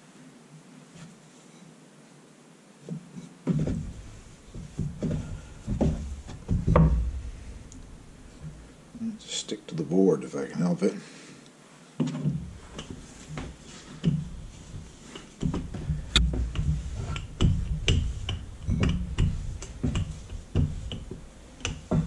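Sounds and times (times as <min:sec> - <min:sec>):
rolling pin rumbling over dough: 0:03.5 - 0:08.8, 0:12.0 - 0:22.0.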